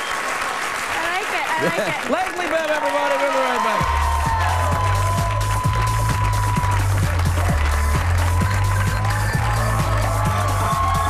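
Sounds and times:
band play-off music: 3.8s - 11.0s
drum beat: 3.8s - 11.0s
held bass line: 3.8s - 11.0s.

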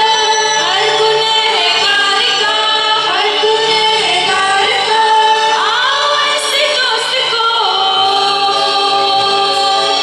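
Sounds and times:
group singing with woman leading: 0.0s - 10.0s.

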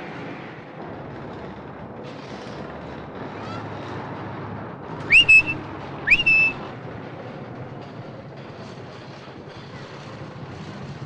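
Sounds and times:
street hum: 0.0s - 11.0s
person whistling: 5.1s - 6.6s.

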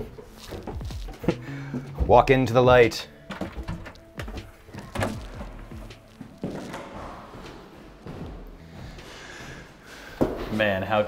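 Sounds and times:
footsteps on hard floor: 0.0s - 10.6s.

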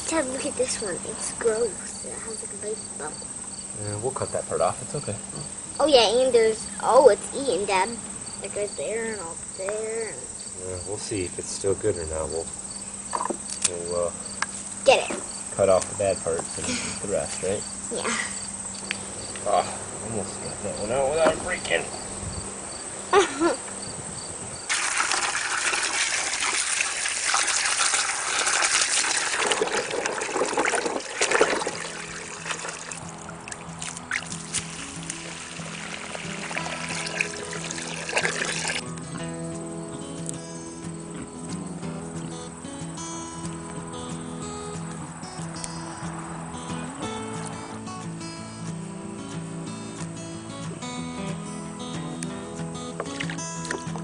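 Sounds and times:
water pouring and splashing: 24.7s - 38.9s
instrumental background music: 33.8s - 54.0s.

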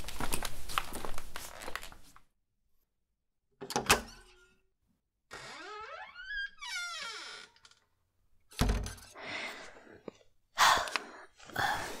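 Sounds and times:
door hinges creaking: 5.3s - 7.9s.

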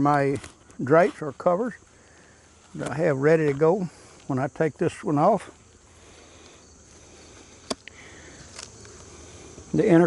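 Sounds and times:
faint insect buzzing: 1.8s - 10.0s
sharp click of hive tool: 7.6s - 8.7s.

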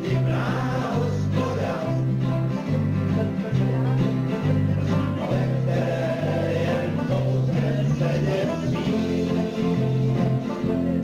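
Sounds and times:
acoustic guitar strumming: 0.0s - 11.0s
man singing: 0.0s - 11.0s.

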